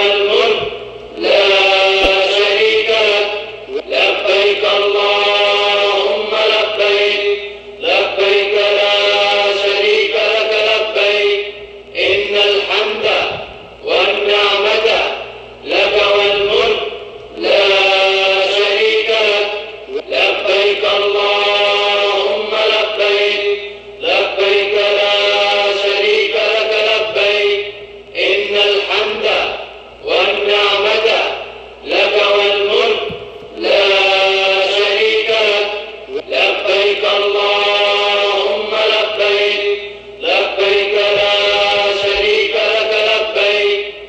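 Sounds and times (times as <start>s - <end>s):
man chanting: 0.0s - 44.0s.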